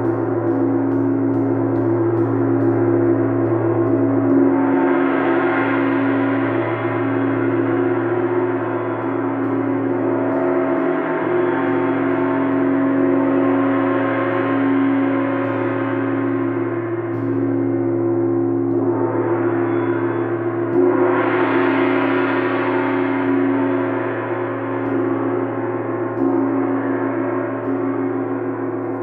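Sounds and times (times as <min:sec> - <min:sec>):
gong ringing: 0:00.0 - 0:29.0.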